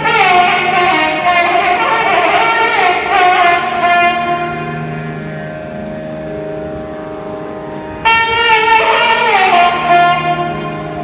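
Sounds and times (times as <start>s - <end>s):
electronic drone: 0.0s - 11.0s
held double-reed wind note: 0.0s - 11.0s.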